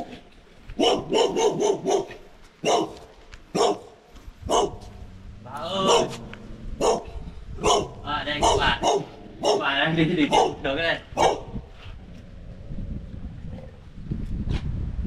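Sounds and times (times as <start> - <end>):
small dog barking: 0.8 - 3.9, 4.5 - 4.8, 5.8 - 6.2, 6.8 - 10.6, 11.2 - 11.6.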